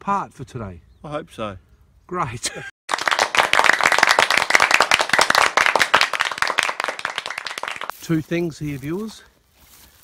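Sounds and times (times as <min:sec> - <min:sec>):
hands clapping: 0:02.9 - 0:07.9.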